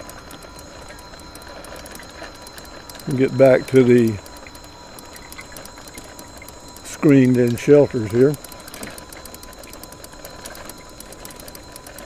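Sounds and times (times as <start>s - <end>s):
electric motor whine: 0.0s - 12.0s
rapid drivetrain ticking: 0.0s - 12.0s.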